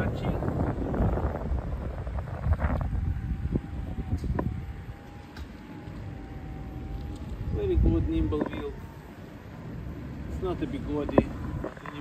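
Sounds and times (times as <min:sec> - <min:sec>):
thin steady whine: 0:00.0 - 0:12.0.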